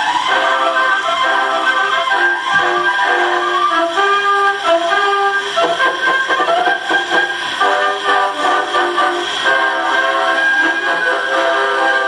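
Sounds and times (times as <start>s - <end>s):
brass band playing a march: 0.2s - 12.0s.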